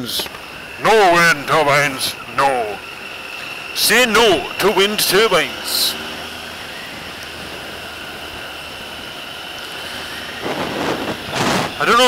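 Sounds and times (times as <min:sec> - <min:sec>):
motorcycle engine and wind rush: 0:00.0 - 0:12.0.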